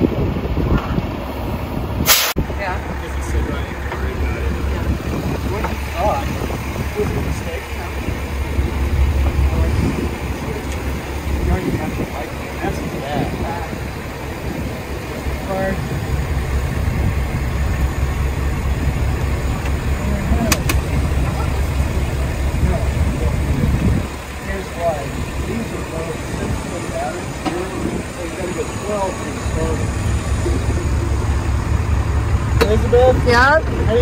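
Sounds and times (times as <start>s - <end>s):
engine rumbling: 0.0s - 34.0s.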